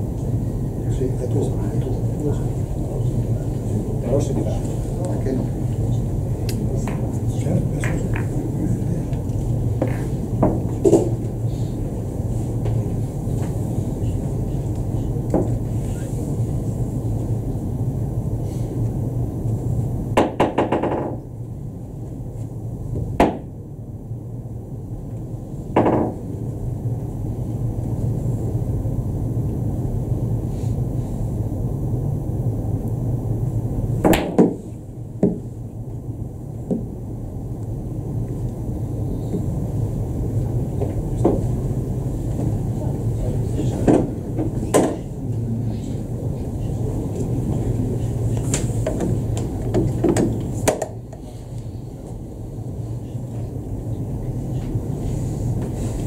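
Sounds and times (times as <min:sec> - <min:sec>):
steady low hum: 0:00.0 - 0:56.0
billiard balls knocking: 0:20.2 - 0:21.2, 0:25.8 - 0:26.2.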